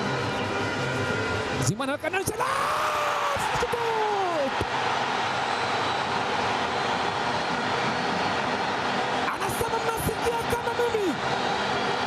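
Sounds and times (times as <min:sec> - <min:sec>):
stadium crowd cheering: 0:00.7 - 0:12.0
long drawn-out shout: 0:02.3 - 0:05.4.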